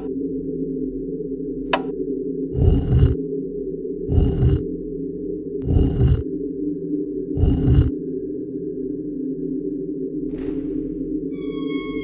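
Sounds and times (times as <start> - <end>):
low drone: 0.0 - 12.0.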